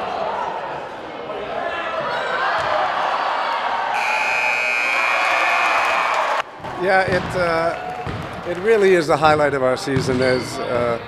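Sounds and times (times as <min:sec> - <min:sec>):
voices in a gym: 0:00.0 - 0:04.0
scoreboard buzzer: 0:04.0 - 0:05.3
basketball bouncing on court: 0:06.6 - 0:08.4, 0:09.2 - 0:11.0.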